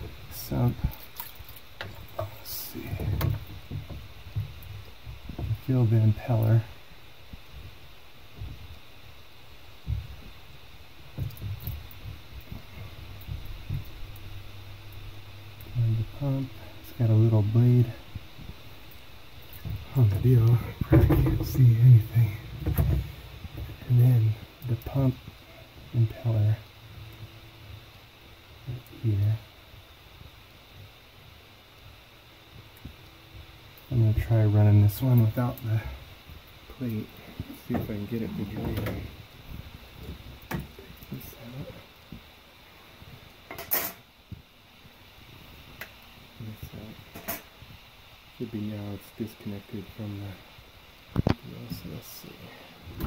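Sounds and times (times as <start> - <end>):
man speaking: 5.6 - 6.7, 15.7 - 18.1, 19.8 - 22.5, 23.8 - 25.2, 36.7 - 39.1, 40.8 - 41.8, 48.4 - 50.4, 51.4 - 52.7.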